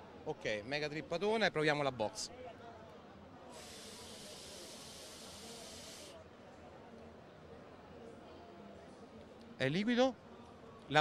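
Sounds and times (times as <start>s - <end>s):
hiss of vaping coil: 3.5s - 6.2s.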